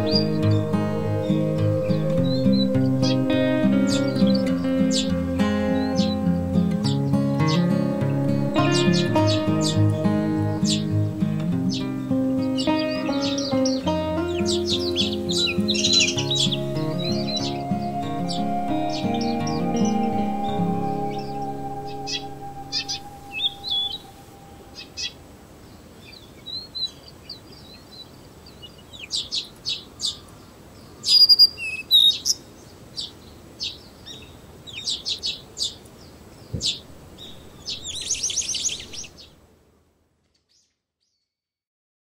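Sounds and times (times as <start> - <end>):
background music: 0.0 - 24.8
bird trill: 0.0 - 25.2
small birds chirping: 0.0 - 25.2, 26.0 - 39.3
faint outdoor hiss: 0.0 - 41.1.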